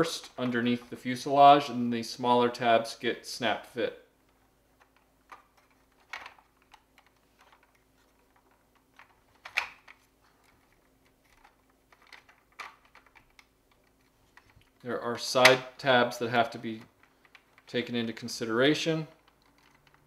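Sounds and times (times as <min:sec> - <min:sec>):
plastic toy parts clicking: 0:11.3 - 0:14.7, 0:16.8 - 0:17.7, 0:19.1 - 0:20.0.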